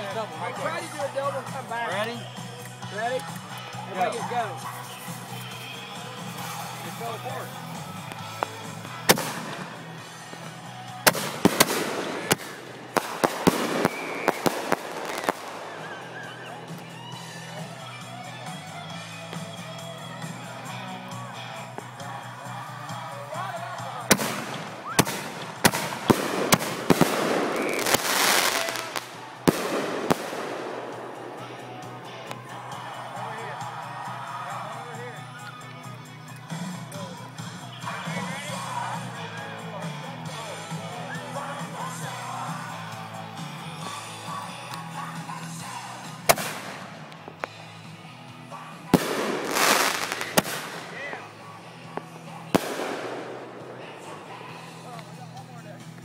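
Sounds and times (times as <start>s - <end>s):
fireworks bangs and crackles: 0.0s - 23.2s, 23.8s - 34.4s, 41.6s - 56.0s
faint rock music: 0.0s - 56.0s
voices: 0.0s - 56.0s.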